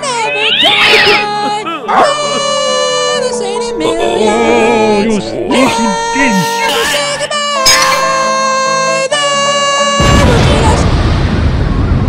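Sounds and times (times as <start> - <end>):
high cat-like wail: 0.1 - 1.3.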